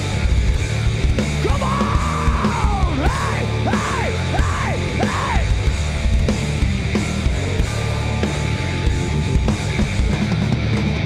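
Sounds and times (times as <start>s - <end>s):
live metal band: 0.0s - 11.0s.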